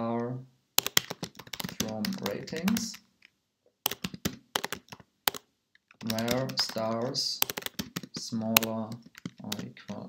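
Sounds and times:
computer keyboard typing: 0:00.8 - 0:03.1, 0:03.9 - 0:10.0.

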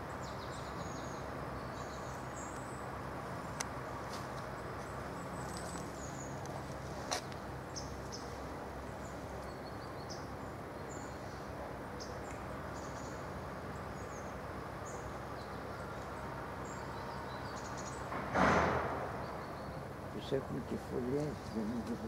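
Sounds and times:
small birds chirping: 0:00.0 - 0:18.2, 0:18.9 - 0:22.0
steady background hiss: 0:00.0 - 0:22.0.

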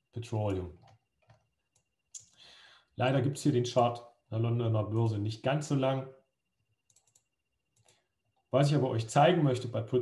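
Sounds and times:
computer mouse clicks: 0:06.8 - 0:08.0.

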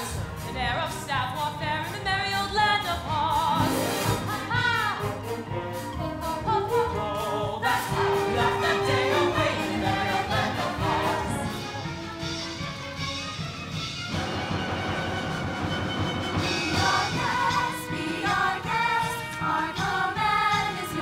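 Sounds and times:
musical accompaniment: 0:00.0 - 0:21.0
large chorus singing: 0:03.6 - 0:11.7, 0:16.4 - 0:21.0.

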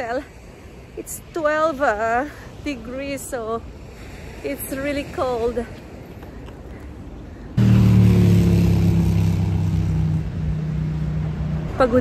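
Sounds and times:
road vehicle humming: 0:00.0 - 0:12.0.

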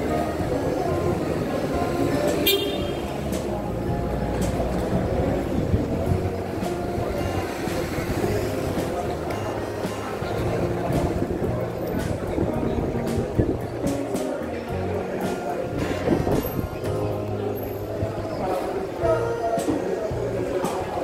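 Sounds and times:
indistinct voices: 0:00.0 - 0:21.0
music playing: 0:00.0 - 0:21.0
rumble of vehicles: 0:00.0 - 0:21.0.

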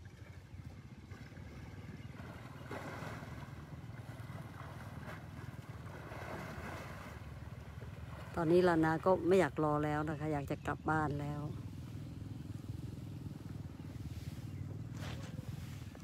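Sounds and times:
water sloshing: 0:00.0 - 0:16.0
wind rumbling on microphone: 0:00.6 - 0:16.0.

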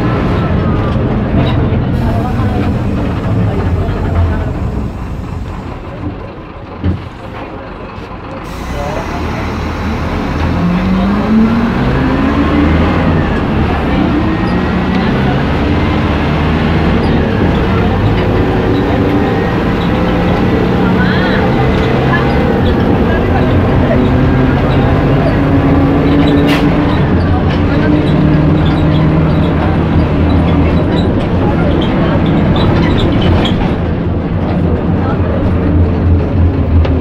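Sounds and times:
bus engine accelerating: 0:00.0 - 0:37.0.

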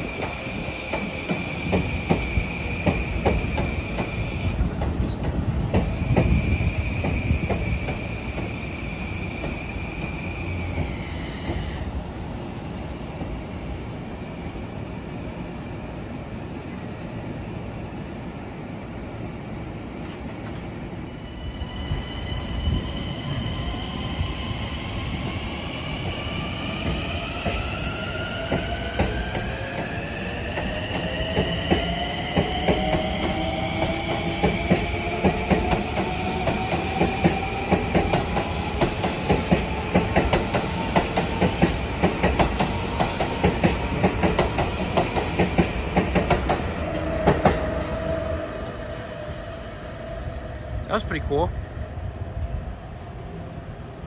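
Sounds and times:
train wheels clicking over rail joints: 0:00.2 - 0:06.4, 0:30.6 - 0:47.7.

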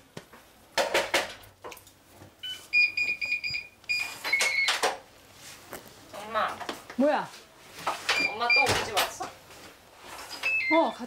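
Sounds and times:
keypad beeps: 0:02.4 - 0:04.8, 0:08.2 - 0:08.8, 0:10.4 - 0:11.0.

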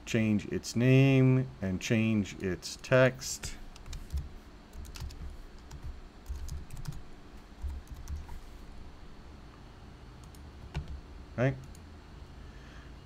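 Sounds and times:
computer keyboard typing: 0:03.7 - 0:07.0, 0:07.6 - 0:08.4, 0:10.2 - 0:11.0.

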